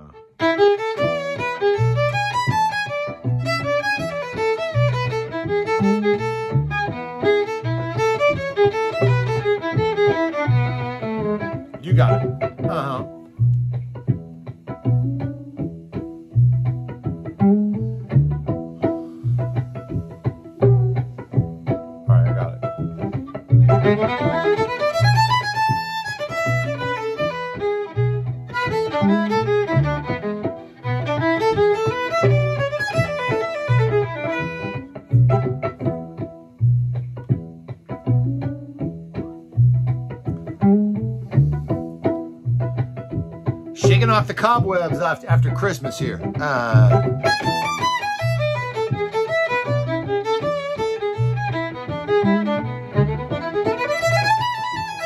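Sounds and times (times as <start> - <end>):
fiddle playing: 0.0 - 37.5, 39.2 - 55.0
low bass pulse: 46.8 - 47.5.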